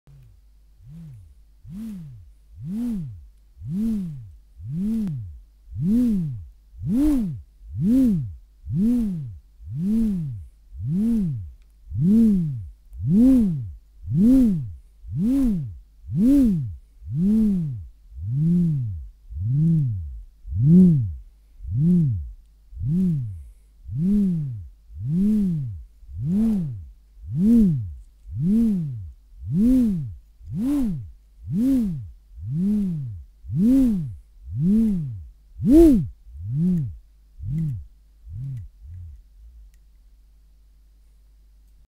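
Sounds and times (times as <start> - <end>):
wooden buzzer whirring: 0.8 - 23.3, 23.9 - 39.1.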